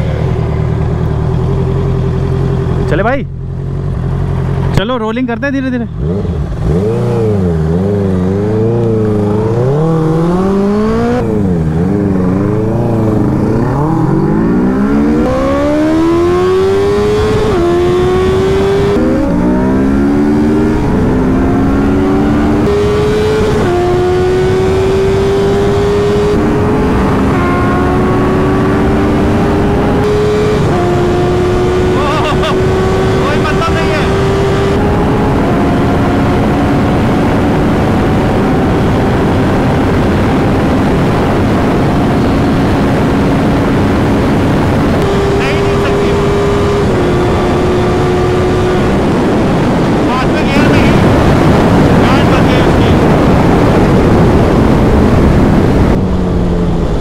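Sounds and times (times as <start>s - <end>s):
motorcycle engine accelerating: 0.0s - 57.0s
wind noise: 6.3s - 57.0s.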